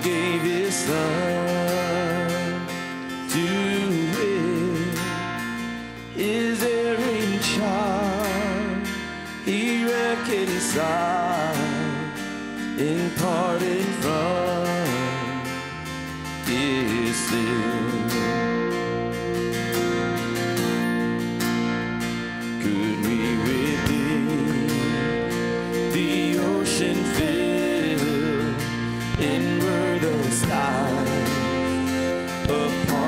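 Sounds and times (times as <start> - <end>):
strummed acoustic guitar: 0.0 - 33.0
voices singing a hymn: 22.7 - 33.0.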